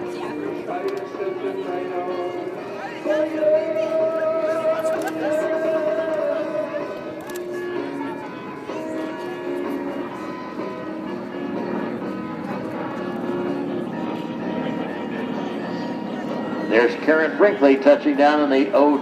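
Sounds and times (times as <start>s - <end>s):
music over public address: 0.0s - 19.0s.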